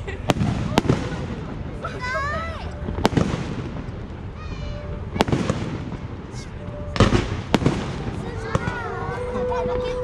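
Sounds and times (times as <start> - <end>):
fireworks bursting with bangs: 0.0 - 2.0, 2.7 - 9.9.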